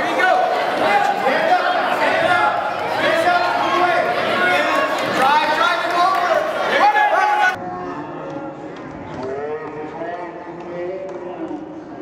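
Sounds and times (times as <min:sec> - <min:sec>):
loud crowd voices: 0:00.0 - 0:12.0.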